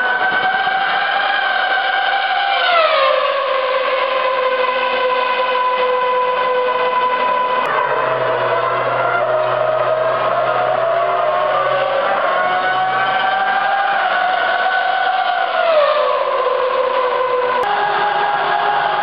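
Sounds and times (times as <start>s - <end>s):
racing car engine revving high: 0.0s - 19.0s.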